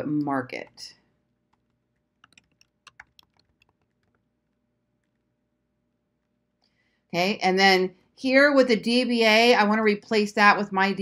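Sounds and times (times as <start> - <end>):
keyboard typing: 1.5 - 5.3.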